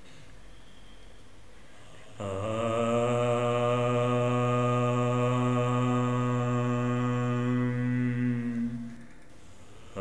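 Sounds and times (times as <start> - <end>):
man chanting: 2.0 - 9.1.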